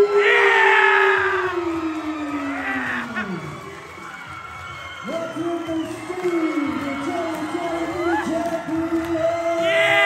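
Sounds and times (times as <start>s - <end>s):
crowd cheering and screaming: 0.0s - 10.0s.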